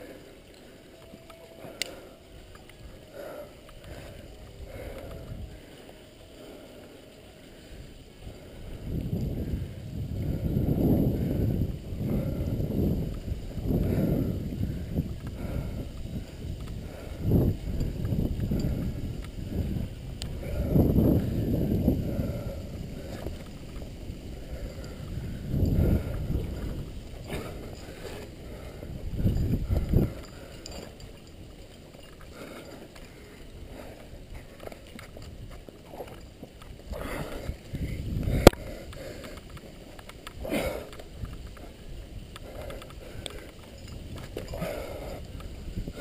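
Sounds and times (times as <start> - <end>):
small ticks: 0.0 - 10.5, 12.0 - 46.0
hard breathing: 0.0 - 46.0.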